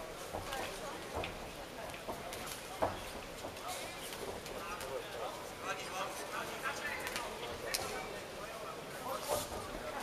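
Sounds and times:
noisy arena background: 0:00.0 - 0:10.0.

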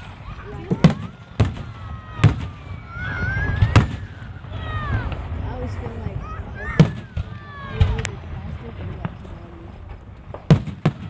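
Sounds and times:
firework shells bursting: 0:00.0 - 0:05.8, 0:06.6 - 0:11.0.

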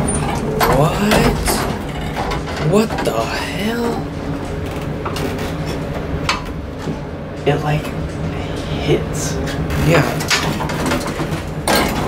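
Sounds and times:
elevator door sliding closed: 0:00.0 - 0:12.0
steady low hum: 0:00.0 - 0:12.0.

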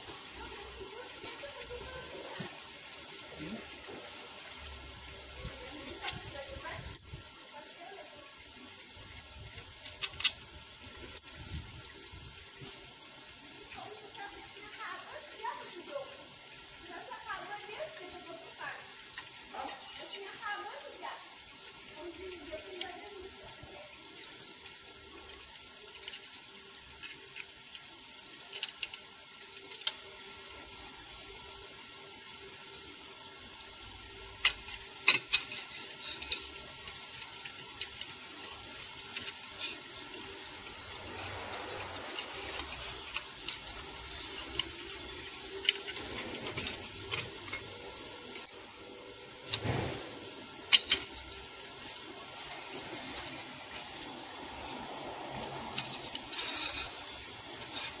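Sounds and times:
steady hiss: 0:00.0 - 0:58.0
metal plates clicking together: 0:09.5 - 0:11.4, 0:34.4 - 0:54.7.

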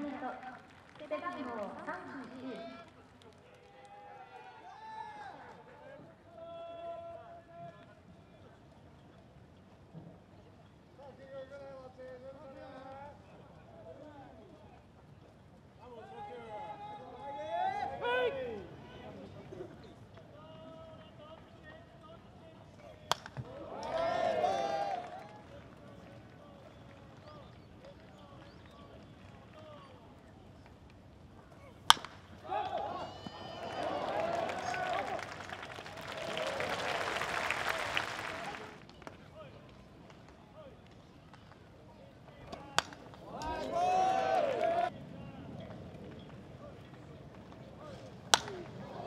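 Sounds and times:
crowd of voices: 0:15.8 - 0:49.0
baseball bat cracking ball: 0:23.0 - 0:24.0, 0:31.8 - 0:33.0, 0:42.5 - 0:43.7, 0:48.2 - 0:49.0
spectators and players calling out: 0:23.4 - 0:25.3, 0:32.4 - 0:35.4, 0:42.3 - 0:44.9.

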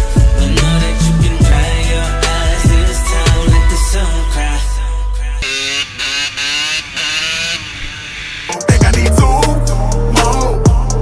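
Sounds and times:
dirt bike engine revving: 0:00.2 - 0:03.6, 0:05.4 - 0:08.8.

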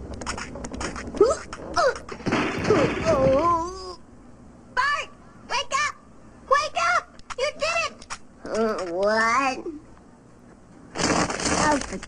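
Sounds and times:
crash of boxes falling: 0:02.1 - 0:03.7.

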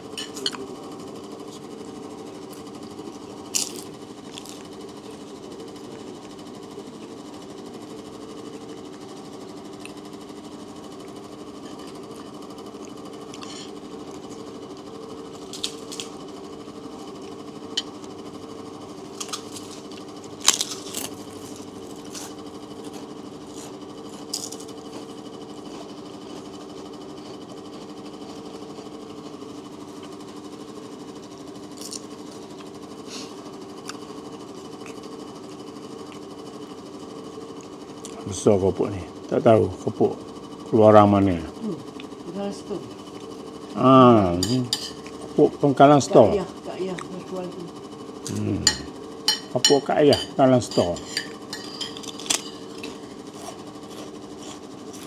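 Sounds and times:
steady mechanical hum: 0:00.0 - 0:55.0
spoons clinking against plates: 0:44.4 - 0:45.1, 0:48.7 - 0:53.1.

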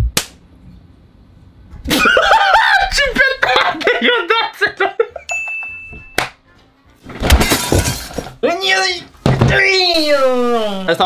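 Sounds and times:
slap-like crack of cat swat: 0:00.2 - 0:00.4
people laughing: 0:01.9 - 0:05.3.

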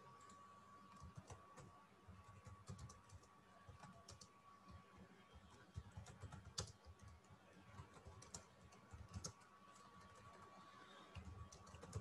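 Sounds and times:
keyboard typing: 0:00.2 - 0:12.0
faint steady tone: 0:06.7 - 0:12.0.

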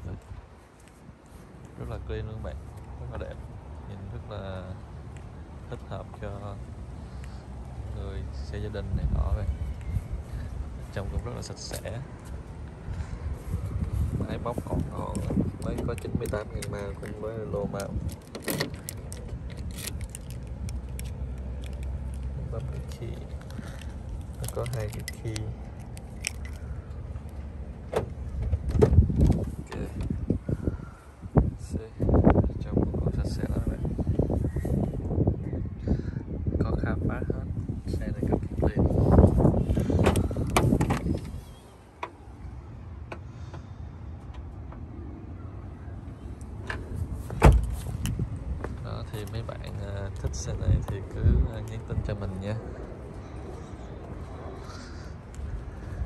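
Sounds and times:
steady low rumble: 0:00.0 - 0:56.0
bird calling: 0:53.2 - 0:56.0.

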